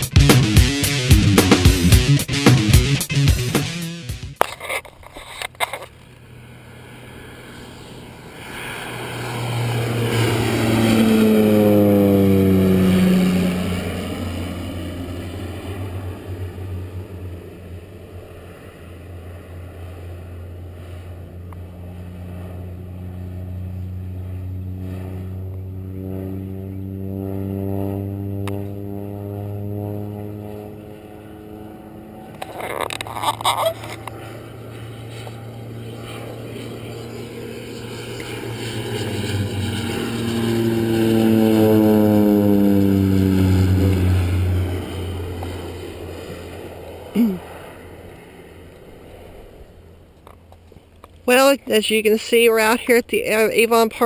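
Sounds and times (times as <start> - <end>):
propeller airplane passing overhead: 0.0 - 54.0.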